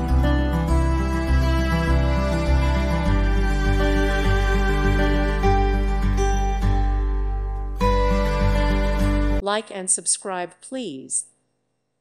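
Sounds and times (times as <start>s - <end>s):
gentle instrumental music: 0.0s - 9.5s.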